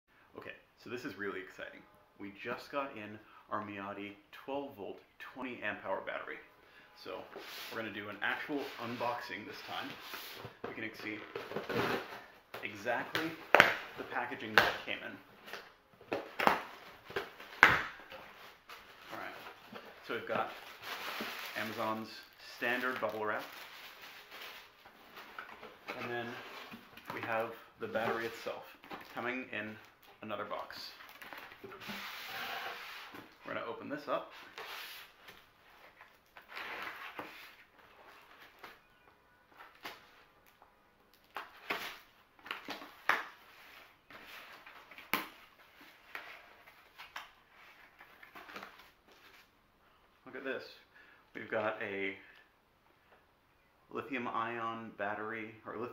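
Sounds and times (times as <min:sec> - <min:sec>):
soft scrapes: 0:07.2 - 0:10.6
plastic air pillow wrap rustling: 0:20.0 - 0:24.8.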